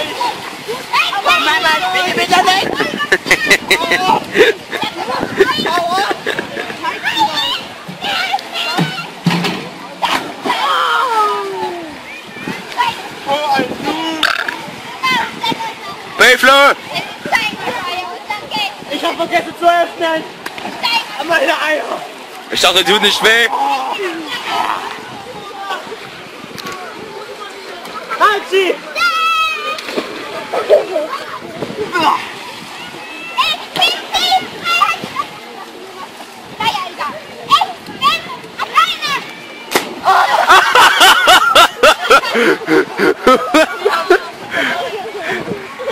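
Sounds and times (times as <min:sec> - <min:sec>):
children shouting: 0:00.0 - 0:09.2, 0:09.8 - 0:16.1, 0:27.9 - 0:45.9
people chatting: 0:00.0 - 0:45.9
pool water splashing: 0:00.0 - 0:45.9.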